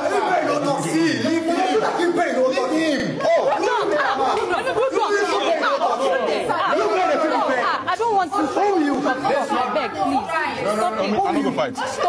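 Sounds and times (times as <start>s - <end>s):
people arguing over one another: 0.0s - 12.0s.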